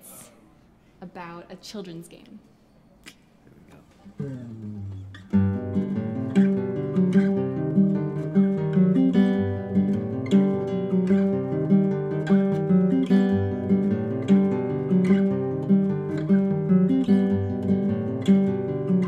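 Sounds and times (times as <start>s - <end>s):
solo acoustic guitar strumming: 4.2s - 19.0s.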